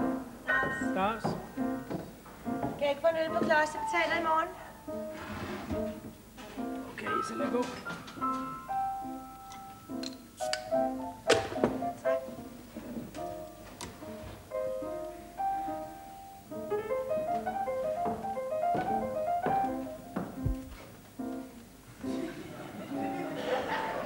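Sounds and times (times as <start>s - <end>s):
slow piano melody: 0.0s - 24.0s.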